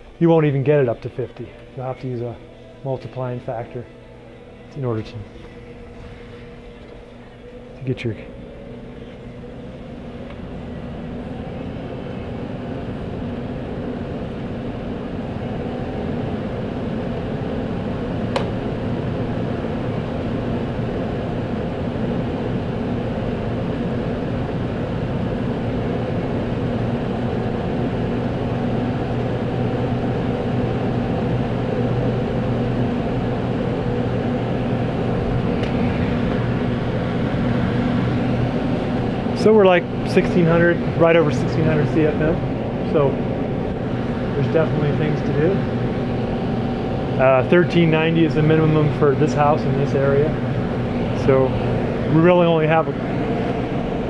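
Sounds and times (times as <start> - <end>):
fan hum and rushing air: 0.0 - 54.0.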